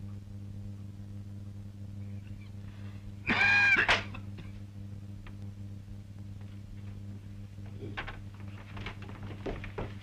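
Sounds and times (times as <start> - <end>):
steady low hum: 0.0 - 10.0
high-pitched call: 3.3 - 3.9.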